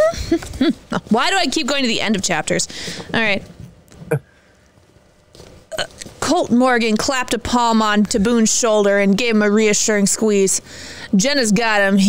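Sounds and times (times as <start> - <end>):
woman reading aloud: 1.0 - 3.4, 6.2 - 12.0.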